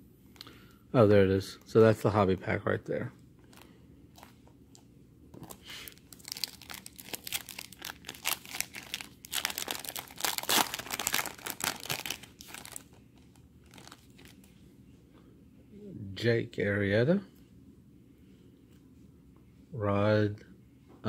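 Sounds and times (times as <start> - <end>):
foil wrapper crinkling and tearing: 5.4 - 14.5.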